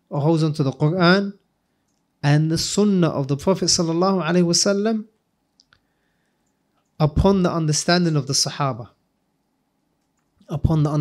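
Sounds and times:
faint clicks: 1.8 - 2.1, 6.4 - 7.0, 10.0 - 10.5.

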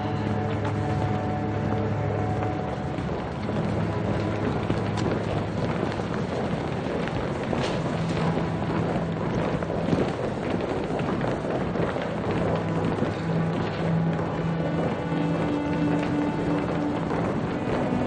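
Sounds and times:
footsteps on tiled floor: 0.0 - 18.0
low music drone: 0.0 - 18.0.

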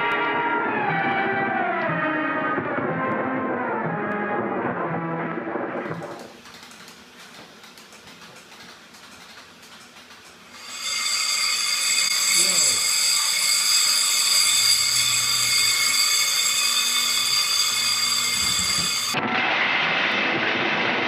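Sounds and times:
steady electrical buzz: 6.2 - 19.2
high whining tones: 10.5 - 19.2.

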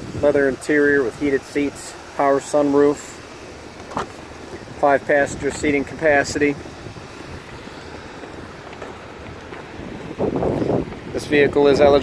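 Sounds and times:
wind buffeting a microphone: 3.9 - 12.0.

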